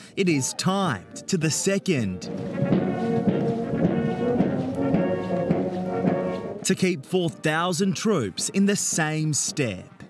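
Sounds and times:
brass band playing chords: 1.0s - 9.1s.

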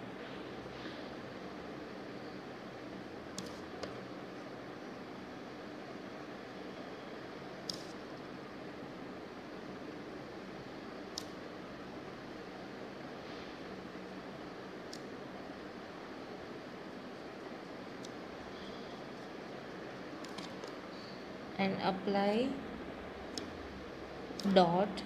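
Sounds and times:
faint hum: 0.0s - 25.0s.

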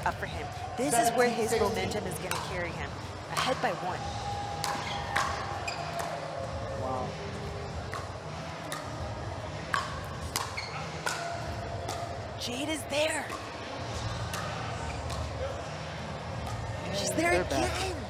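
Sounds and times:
murmur of voices: 0.0s - 18.0s.

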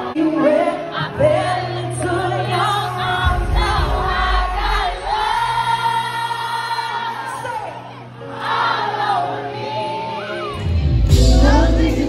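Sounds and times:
woman singing into a microphone: 0.0s - 7.8s, 11.1s - 12.0s
live backing music: 0.0s - 12.0s
deep bass: 10.7s - 12.0s.

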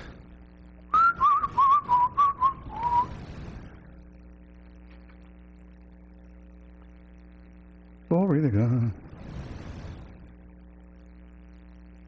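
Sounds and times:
person whistling with trills: 0.9s - 3.1s.

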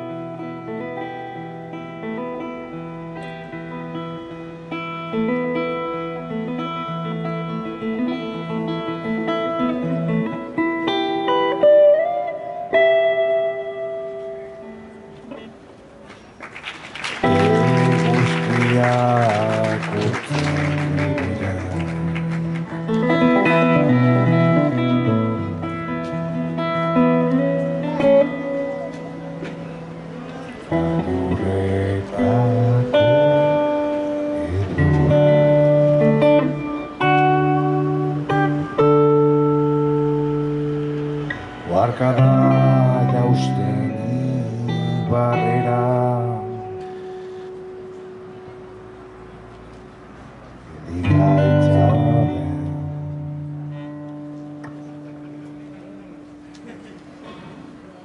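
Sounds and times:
acoustic guitar playing: 0.0s - 16.4s, 17.1s - 58.0s.

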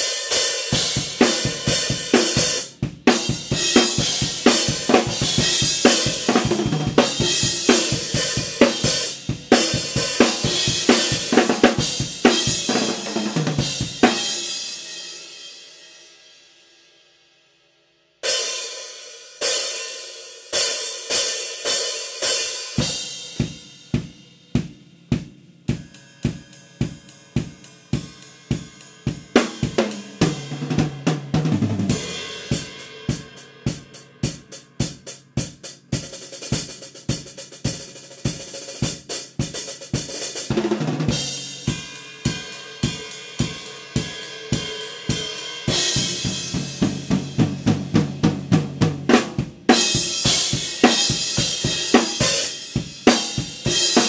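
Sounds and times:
acoustic drum kit: 0.0s - 15.8s, 18.2s - 54.0s.

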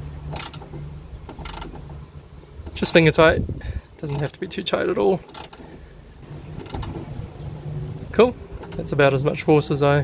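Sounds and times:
hand ratchet clicking: 0.3s - 0.7s, 1.3s - 1.8s, 4.0s - 4.4s, 5.3s - 5.7s, 6.6s - 7.0s.

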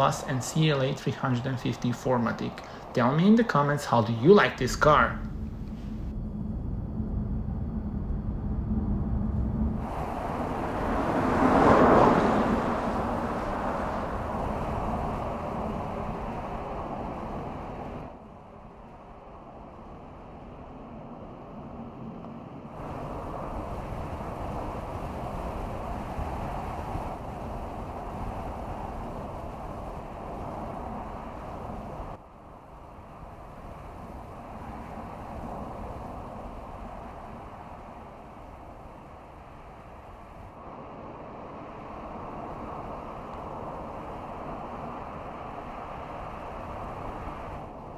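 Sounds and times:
steady low hum: 0.0s - 47.9s
tyre and wind noise: 22.4s - 47.9s.

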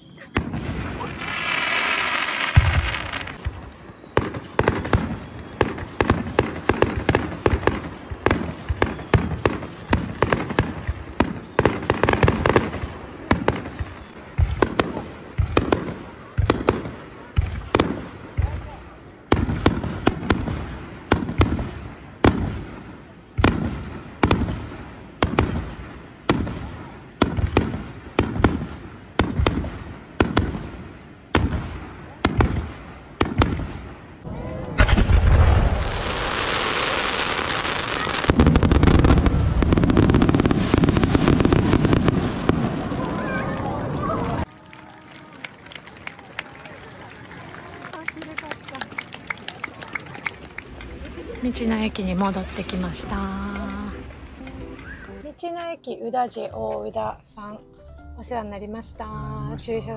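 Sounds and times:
fireworks bursting with rumble: 0.1s - 55.4s.

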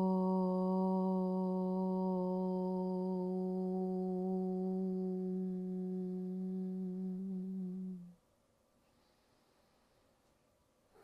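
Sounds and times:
woman chanting om: 0.0s - 8.2s.

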